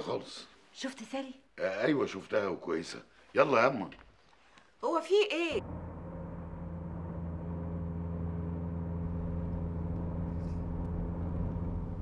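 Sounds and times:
car engine droning: 5.6 - 12.0.

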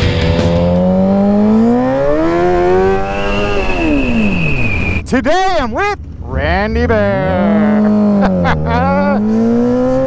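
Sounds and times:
rock music: 0.0 - 1.4
motorcycle engine revving: 0.0 - 5.0, 5.6 - 10.0.

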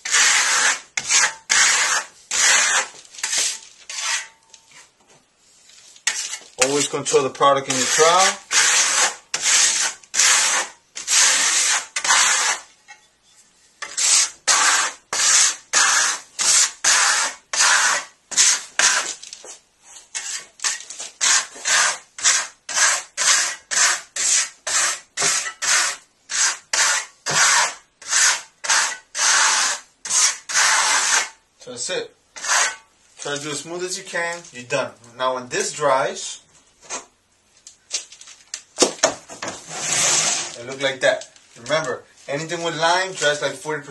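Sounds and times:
trowel scraping plaster on wall: 0.0 - 4.9, 5.8 - 12.7, 13.8 - 31.4, 32.4 - 33.4, 39.3 - 41.0.

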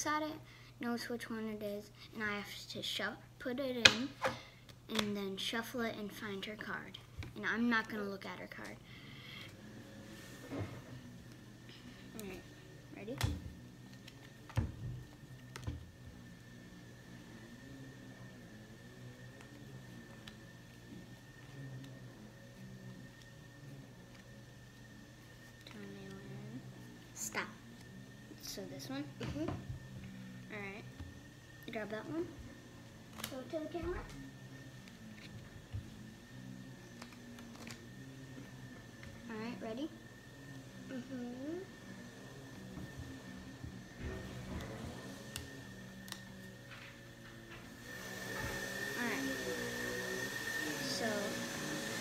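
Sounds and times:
faint steady hum: 0.0 - 52.0.

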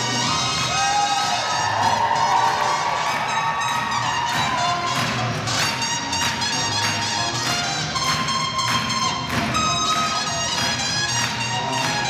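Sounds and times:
audience cheering and whooping: 0.0 - 5.6
swing music over loudspeakers: 0.0 - 12.0.

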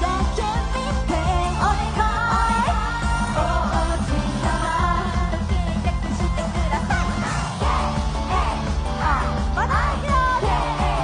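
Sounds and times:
upbeat pop backing music: 0.0 - 11.0
women singing into microphones: 0.0 - 11.0.

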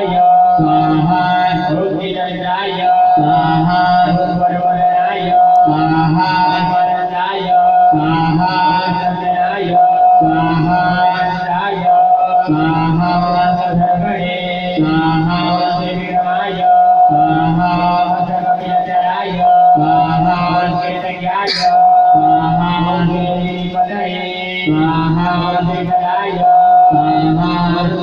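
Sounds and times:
devotional chanting with music: 0.0 - 28.0
steady held drone tone: 21.3 - 22.6
steady held tone: 21.5 - 22.0.

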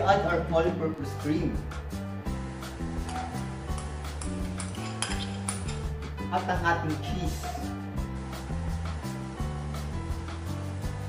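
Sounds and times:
background music: 0.0 - 11.0
spoon scraping and clinking bowl: 3.0 - 5.9.

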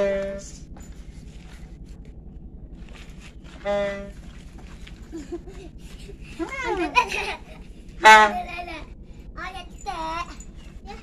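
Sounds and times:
steady low rumble: 0.0 - 11.0
toy trumpet blasts: 8.0 - 8.4.

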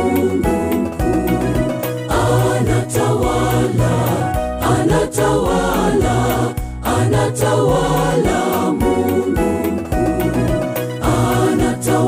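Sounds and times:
backing bass and beat: 0.0 - 12.0
mixed choir singing gospel: 0.0 - 12.0.

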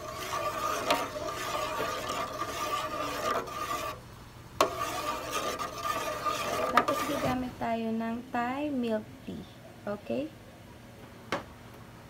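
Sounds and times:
spoon scraping metal pot: 0.0 - 4.0, 4.6 - 7.5
steady hum: 0.0 - 12.0.

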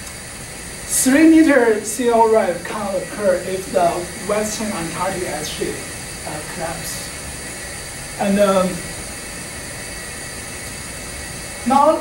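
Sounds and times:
faint constant tones: 0.0 - 12.0
room tone hiss: 0.0 - 12.0.

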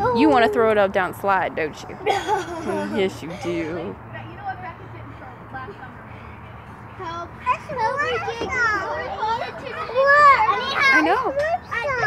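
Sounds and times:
children calling out at play: 0.0 - 0.7, 7.0 - 12.0.

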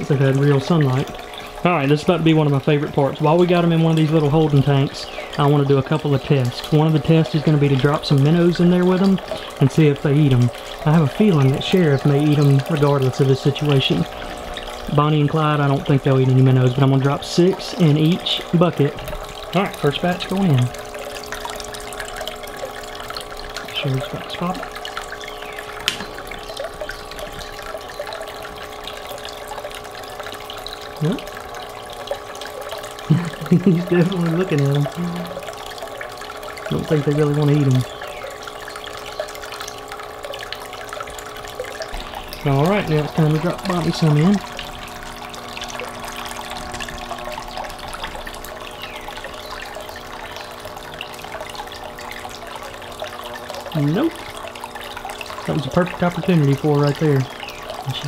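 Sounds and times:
steady hum: 0.0 - 58.0
water trickling from aquarium filter: 0.0 - 58.0.

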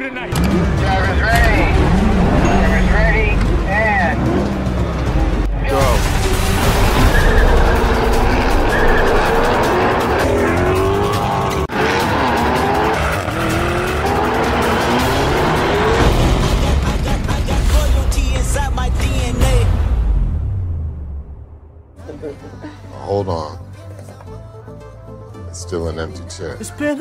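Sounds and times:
car engines revving: 0.0 - 19.3
trailer music: 0.0 - 27.0
tyre squeal: 7.0 - 9.6.

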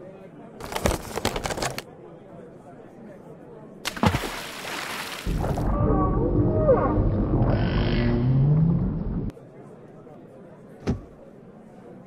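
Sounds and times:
deep underwater rumble: 5.4 - 9.3
whale calls: 5.6 - 8.8.

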